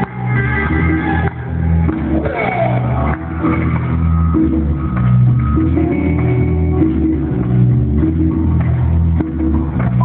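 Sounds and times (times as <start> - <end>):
heavy low bass line: 0.0 - 10.0
live band playing: 0.0 - 10.0.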